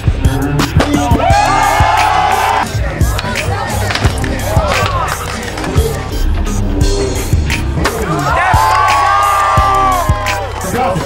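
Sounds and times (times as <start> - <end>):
music with bass beat and vocals: 0.0 - 11.0
skateboard rolling on concrete: 2.6 - 6.8.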